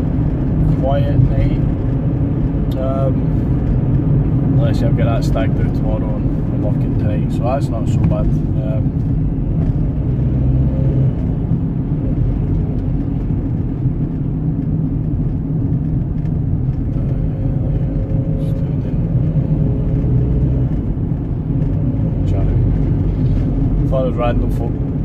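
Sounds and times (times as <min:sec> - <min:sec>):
engine and road rumble: 0:00.0 - 0:25.0.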